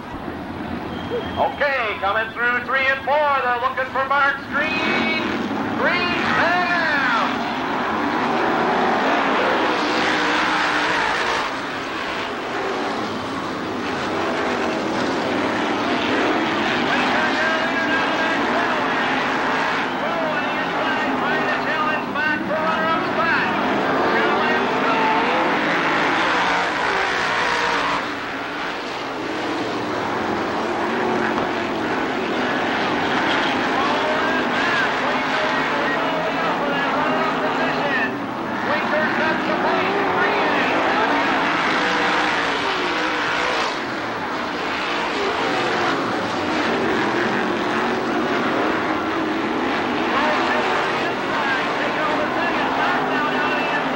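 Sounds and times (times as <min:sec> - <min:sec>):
race car engines at full throttle: 0:00.0 - 0:53.9.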